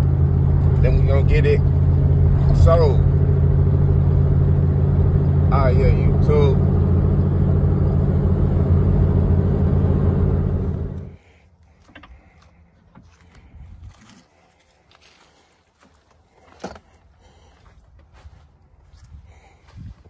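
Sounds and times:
car road and engine noise: 0.0 - 20.0
footsteps in dry leaves: 13.0 - 19.8.

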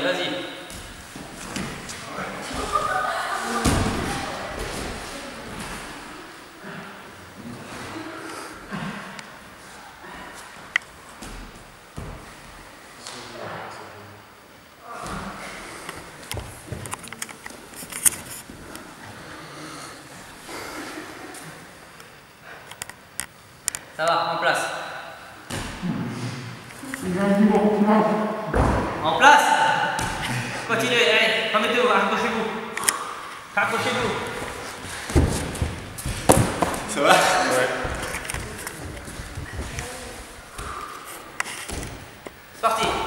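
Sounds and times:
men's voices echoing: 27.0 - 35.1, 36.7 - 39.4, 42.6 - 43.0
uniforms rustling and scuffing: 33.8 - 37.0, 37.6 - 42.3.

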